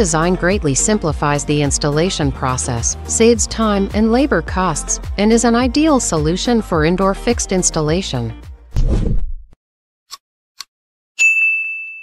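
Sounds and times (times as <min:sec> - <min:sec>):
bright high ding: 0:11.2 - 0:12.0.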